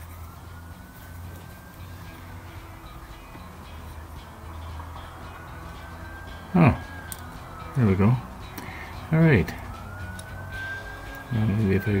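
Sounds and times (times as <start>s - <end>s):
faint distant siren wailing: 0.0s - 12.0s.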